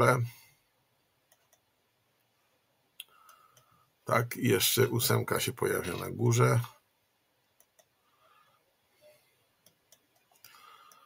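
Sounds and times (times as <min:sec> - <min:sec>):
faint computer mouse clicks: 0:01.3 - 0:01.7, 0:03.0 - 0:03.7, 0:07.6 - 0:08.0, 0:09.6 - 0:11.0.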